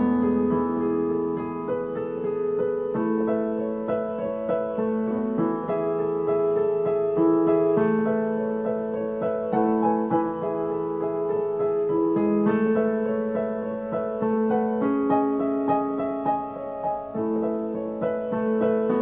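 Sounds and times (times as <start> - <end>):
digital piano playing: 0.0 - 19.0.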